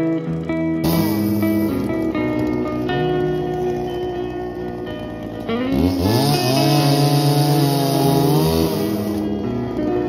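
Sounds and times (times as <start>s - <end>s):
music: 0.0s - 10.0s
engine revving: 0.7s - 9.8s.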